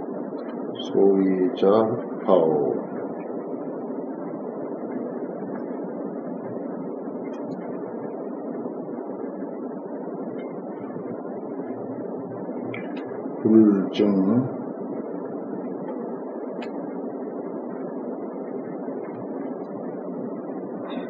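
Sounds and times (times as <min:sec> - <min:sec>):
steady background noise: 0:00.0 - 0:21.0.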